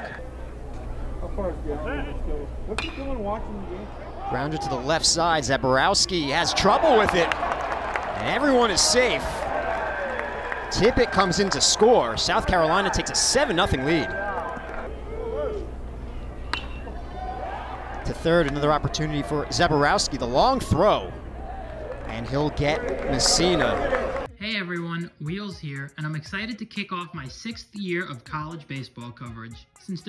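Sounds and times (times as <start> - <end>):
low stadium hum: 0.0 - 24.3
voices calling out: 1.6 - 24.3
metal bat hitting ball: 2.7 - 3.2, 16.4 - 17.0
crowd murmur: 6.6 - 19.5, 22.8 - 24.3.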